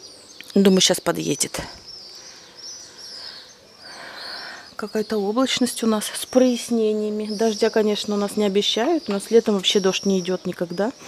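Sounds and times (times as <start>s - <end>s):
faint town noise: 0.0s - 11.0s
small birds chirping: 0.0s - 11.0s.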